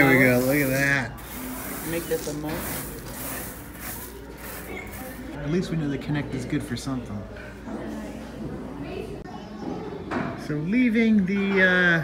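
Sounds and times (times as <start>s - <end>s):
hands scraping sand: 0.0s - 5.3s.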